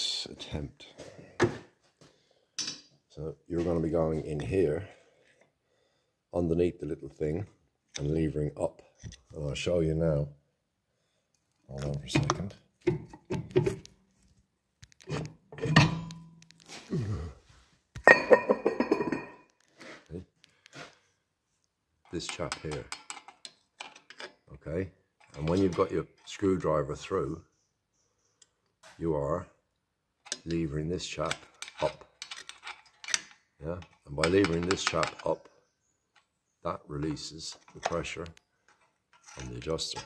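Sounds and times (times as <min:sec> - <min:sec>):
metal parts and tools clanking: 0:02.6 - 0:03.0, 0:15.0 - 0:16.9, 0:22.2 - 0:24.4, 0:31.2 - 0:35.4, 0:37.1 - 0:40.0.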